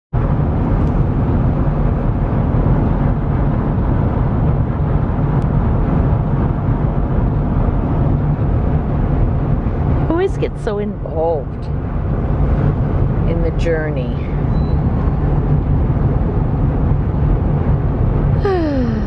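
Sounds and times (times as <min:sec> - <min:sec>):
road and engine noise in truck cab: 0:00.1 - 0:19.0.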